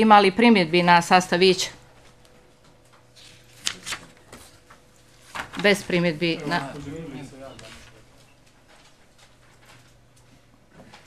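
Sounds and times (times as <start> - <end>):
paper rustling: 3.0 - 10.0.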